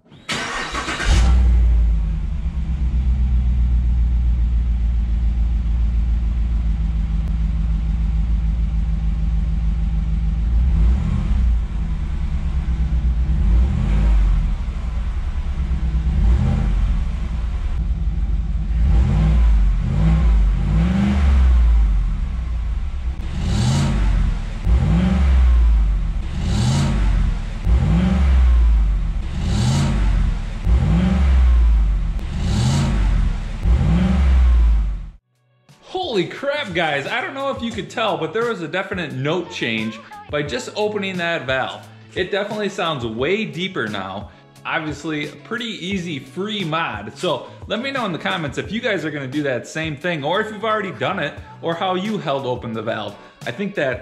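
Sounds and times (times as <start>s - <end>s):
engine exhaust revving: 0.3s - 35.2s.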